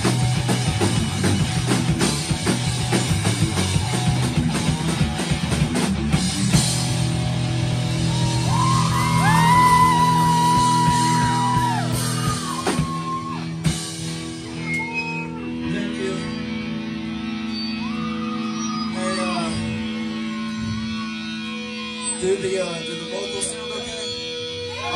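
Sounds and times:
drum kit: 0:00.0 - 0:16.5
live rock band: 0:00.0 - 0:24.9.

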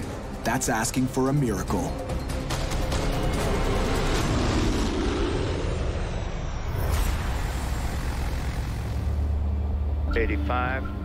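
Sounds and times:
dramatic music hit: 0:02.0 - 0:10.4
turboprop aircraft flying overhead: 0:03.2 - 0:06.7, 0:07.3 - 0:11.0.

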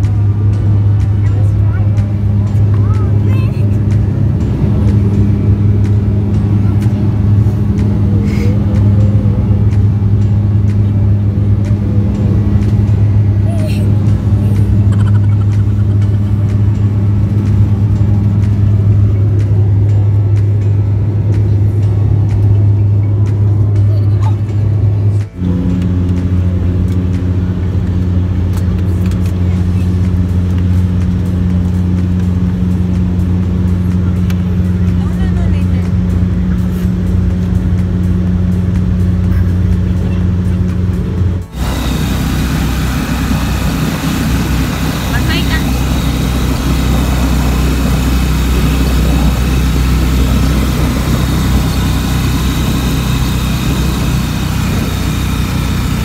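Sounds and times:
airliner engines droning in cabin: 0:00.0 - 0:56.0
vehicle engine and road rumble: 0:00.0 - 0:56.0.

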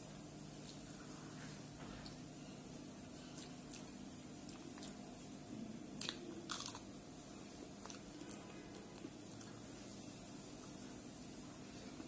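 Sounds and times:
chewing: 0:00.6 - 0:02.2, 0:03.2 - 0:05.0, 0:06.0 - 0:06.9, 0:07.6 - 0:09.7
chilli crunching: 0:05.9 - 0:07.0.

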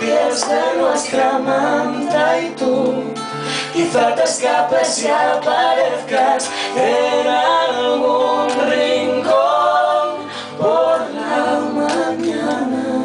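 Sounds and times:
acoustic guitar: 0:00.0 - 0:13.0
man and woman singing duet: 0:00.0 - 0:13.0.

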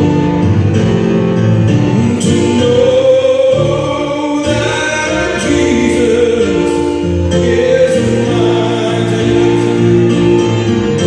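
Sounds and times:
electronic keyboard chords: 0:00.0 - 0:11.0
man singing gospel song: 0:01.8 - 0:11.0.

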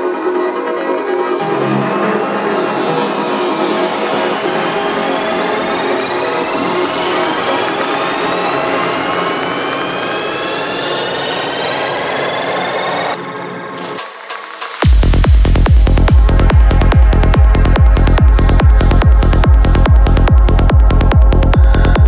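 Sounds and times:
rising synth sweeps: 0:01.3 - 0:22.0
dense synth noise wash: 0:01.4 - 0:22.0.

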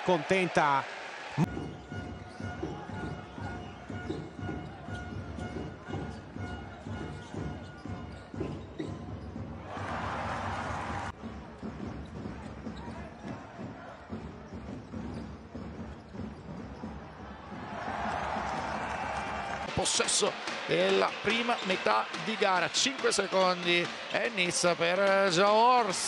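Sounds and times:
crowd cheering: 0:00.0 - 0:01.6, 0:09.6 - 0:11.1, 0:17.2 - 0:26.0
crowd noise: 0:00.0 - 0:01.6, 0:17.2 - 0:26.0
basketball dribbling on hardwood: 0:01.5 - 0:09.6.

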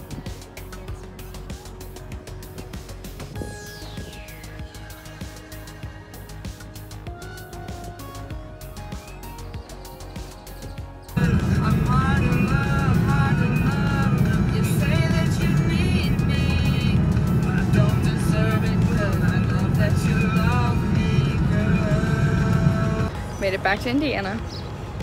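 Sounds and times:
soft music: 0:00.0 - 0:23.1
song with singing: 0:11.1 - 0:23.2
car road and engine rumble: 0:11.2 - 0:25.0.

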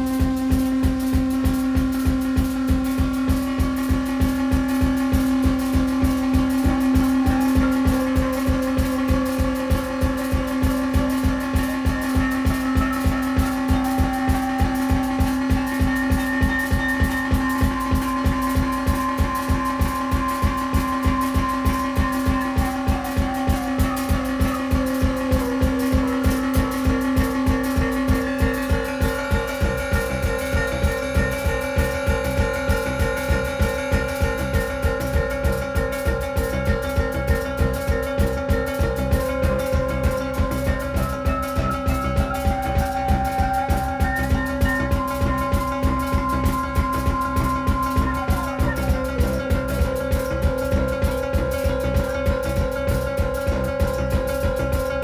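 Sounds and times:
fast low pulse: 0:00.0 - 0:55.0
synthesizer drone: 0:00.0 - 0:55.0.

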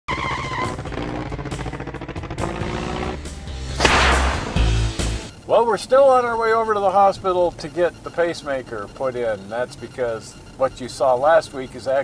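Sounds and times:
loud whoosh: 0:03.5 - 0:05.1.

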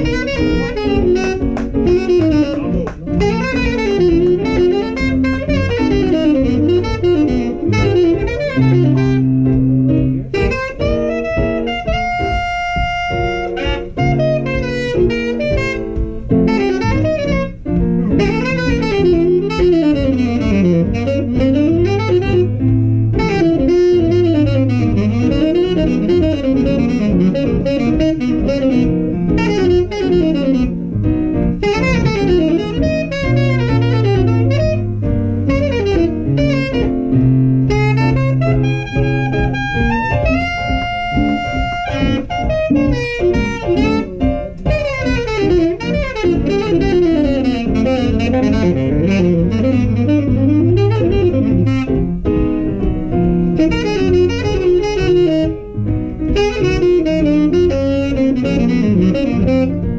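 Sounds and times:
piano guitar and rhythm section: 0:00.0 - 0:59.9
tenor saxophone jazz solo: 0:00.0 - 0:59.9.

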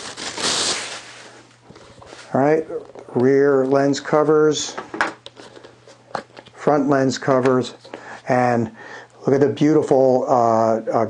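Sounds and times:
plastic wrap crinkling: 0:00.0 - 0:02.5.

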